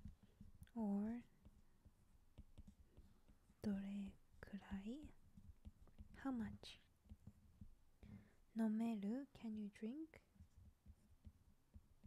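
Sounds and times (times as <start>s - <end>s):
stylus tapping on tablet screen: 0.0s - 8.4s, 10.2s - 12.0s
person speaking softly: 0.7s - 1.3s, 3.5s - 5.2s, 6.1s - 6.9s, 8.5s - 10.3s.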